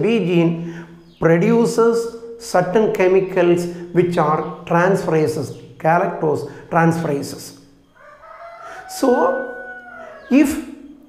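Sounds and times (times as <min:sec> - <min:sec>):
man speaking: 0:10.2 - 0:10.7.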